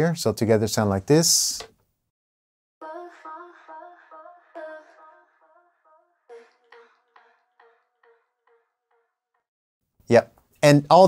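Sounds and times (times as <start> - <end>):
woman singing with echo: 2.8 - 8.8.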